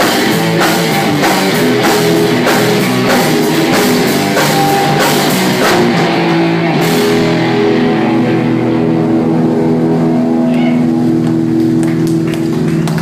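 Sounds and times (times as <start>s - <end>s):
electric guitar chord ringing: 0.0s - 13.0s.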